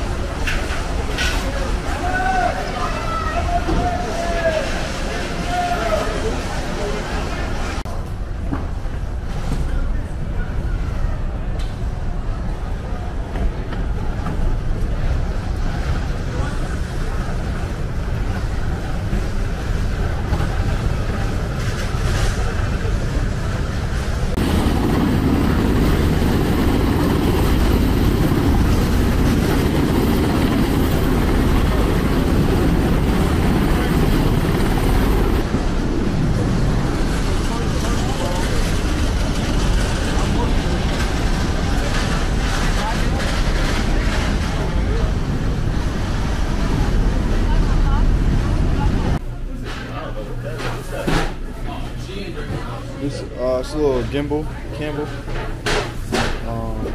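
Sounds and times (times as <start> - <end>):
low rumble of hangar bay: 0.0 - 56.9.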